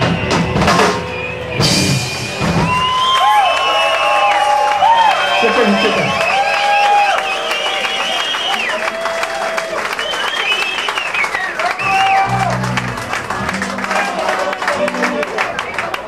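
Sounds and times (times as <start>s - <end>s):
audience clapping: 2.7s - 16.0s
electric guitars gliding notes: 11.8s - 16.0s.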